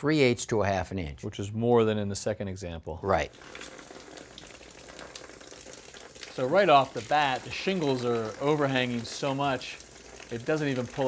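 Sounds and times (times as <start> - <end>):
water running off roof: 3.1 - 11.0.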